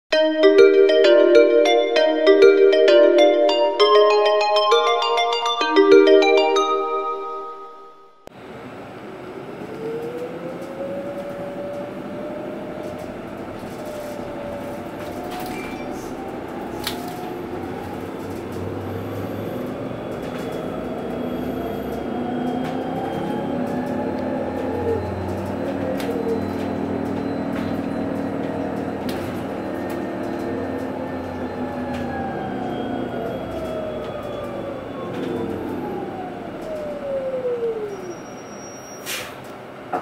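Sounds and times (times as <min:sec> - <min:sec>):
road rumble: 0:08.2 - 0:40.0.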